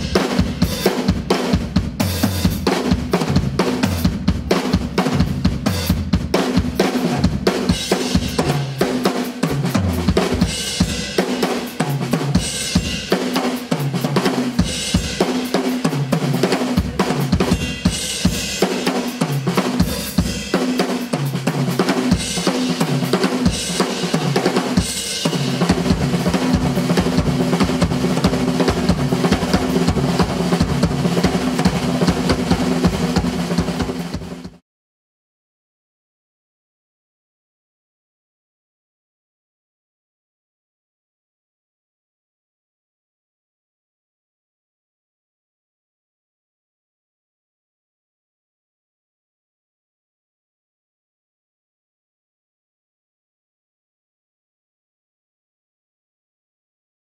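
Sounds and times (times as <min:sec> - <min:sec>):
drum kit solo: 0:00.0 - 0:34.6.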